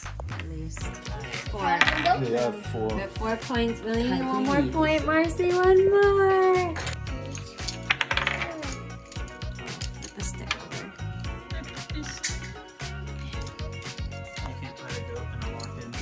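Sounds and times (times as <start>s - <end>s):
background music: 0.0s - 16.0s
game pieces clicking on wooden table: 1.2s - 2.2s, 6.8s - 10.7s.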